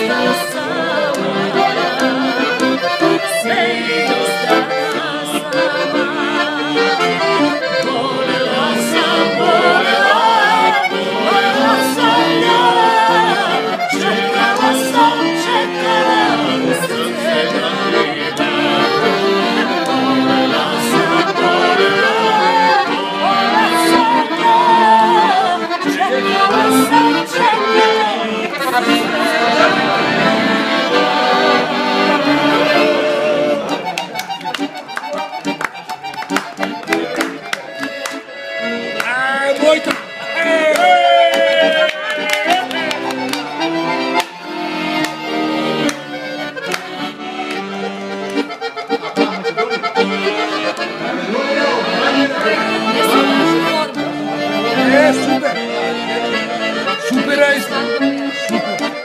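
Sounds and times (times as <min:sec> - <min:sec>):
accordion playing folk tune: 0:00.0 - 0:59.0
hand claps: 0:01.9 - 0:02.8, 0:33.6 - 0:38.3, 0:38.9 - 0:39.2, 0:39.8 - 0:45.2, 0:45.8 - 0:48.6, 0:58.1 - 0:59.0
woman singing: 0:03.0 - 0:07.1, 0:07.9 - 0:17.8, 0:20.9 - 0:29.8.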